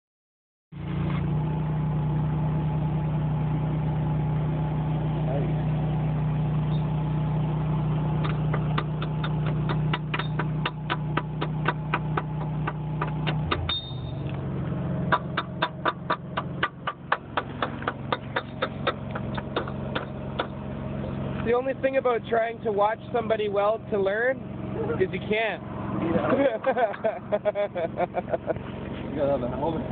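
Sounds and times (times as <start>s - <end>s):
low machine hum: 0.8s - 29.9s.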